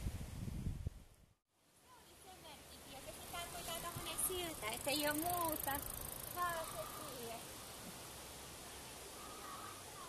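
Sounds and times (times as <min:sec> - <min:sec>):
steady background hiss: 0:01.6 - 0:10.0.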